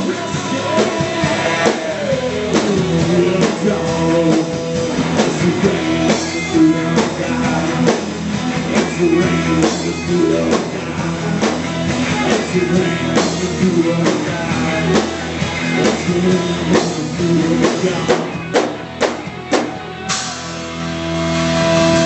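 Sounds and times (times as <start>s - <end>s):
bass guitar: 0.0s - 22.0s
electric guitars bending notes: 0.0s - 22.0s
drum kit hits: 17.8s - 22.0s.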